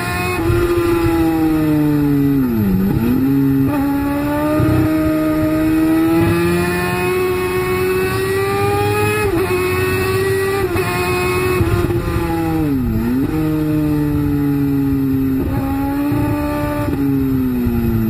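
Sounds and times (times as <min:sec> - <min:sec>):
motorcycle engine at high revs: 0:00.0 - 0:18.0
rushing wind: 0:00.0 - 0:18.0.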